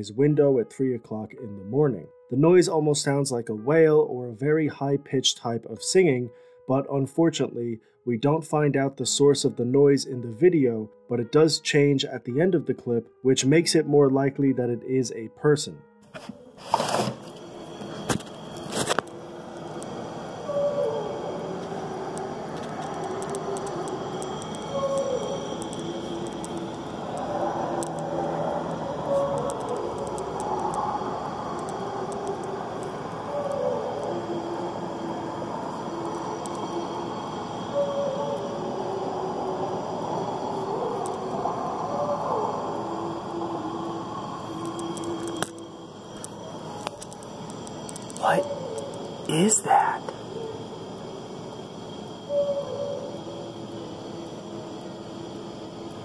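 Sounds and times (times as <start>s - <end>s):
steady hiss: 16.6s - 56.0s
drawn-out wailing calls: 20.3s - 45.4s.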